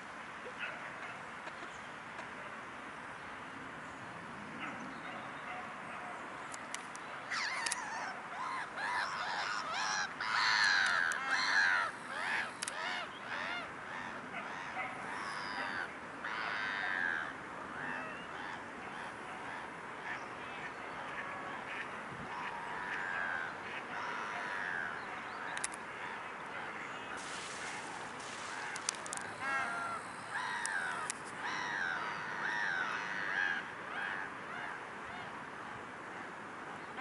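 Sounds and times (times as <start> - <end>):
waterbirds calling: 6.8 - 35.3.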